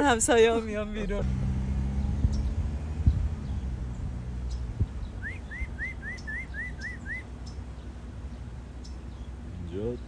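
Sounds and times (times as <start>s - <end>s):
bird whistling rising notes: 5.0s - 7.3s.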